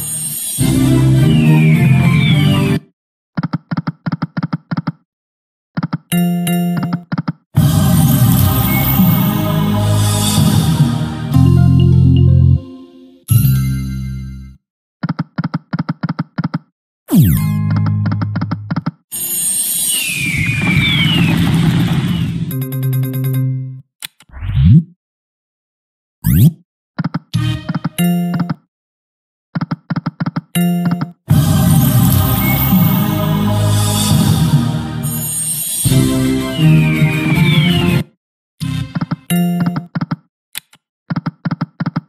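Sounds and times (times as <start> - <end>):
short falling whistles: 1.3 - 2.8, 20.0 - 21.4, 36.5 - 38.0
slot game clicks: 39.3 - 39.9.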